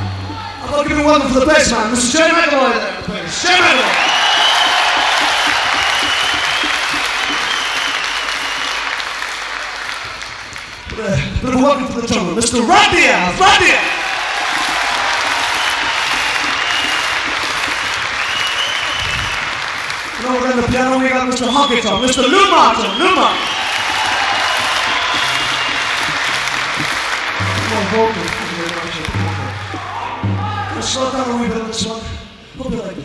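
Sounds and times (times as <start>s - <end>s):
live rock band vamping: 0.0s - 9.6s, 12.7s - 31.2s
crowd noise: 0.0s - 11.0s, 11.6s - 31.8s
audience applauding: 1.4s - 31.4s.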